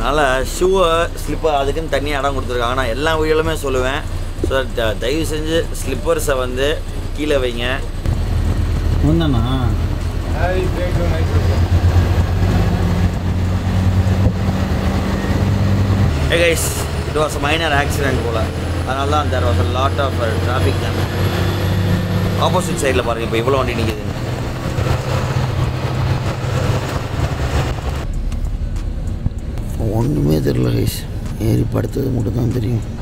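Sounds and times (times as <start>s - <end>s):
diesel engine hum: 0.0s - 33.0s
road and wind hiss: 0.0s - 33.0s.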